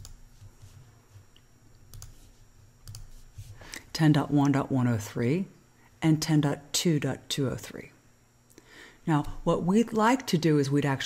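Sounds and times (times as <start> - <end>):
low steady hum: 0.0 - 11.0
computer mouse clicks: 1.3 - 2.2, 2.8 - 3.1.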